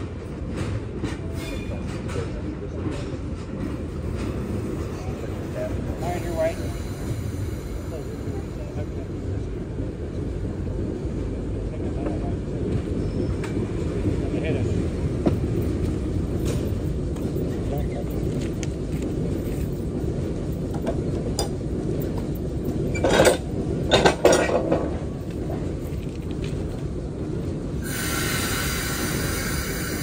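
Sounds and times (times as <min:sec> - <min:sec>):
diesel locomotive rumbling: 0:00.0 - 0:30.0.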